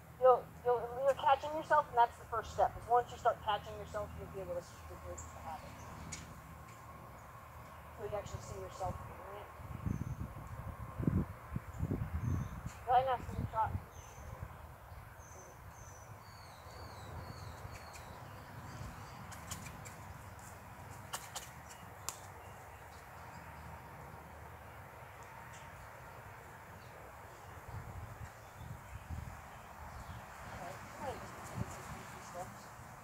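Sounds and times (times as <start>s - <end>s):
small bird chirping: 15.2s - 20.4s
sharp ticks: 19.2s - 20.5s.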